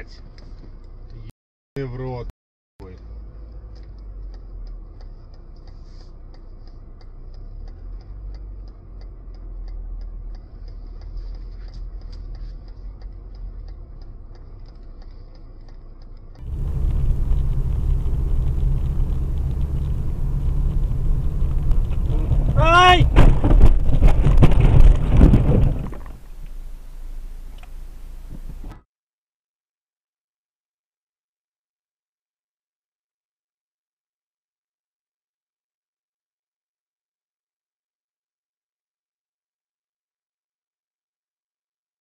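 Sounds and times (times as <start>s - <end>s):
car engine and road rumble: 0.0s - 28.8s
faint regular ticking: 2.9s - 22.6s
loud noise and sharp knocks: 16.4s - 26.2s.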